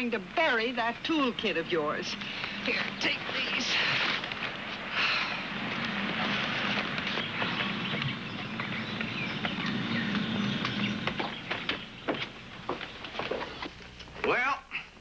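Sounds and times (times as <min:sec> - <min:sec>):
faint low hum: 0:00.0 - 0:15.0
footsteps walking: 0:00.8 - 0:14.4.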